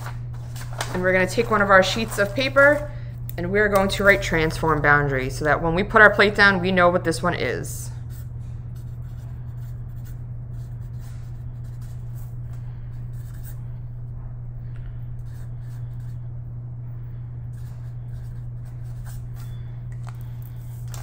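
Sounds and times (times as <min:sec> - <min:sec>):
steady low hum: 0:00.0 - 0:21.0
marker scratching on paper: 0:08.1 - 0:12.3, 0:13.1 - 0:13.6, 0:15.3 - 0:16.2, 0:17.6 - 0:19.6.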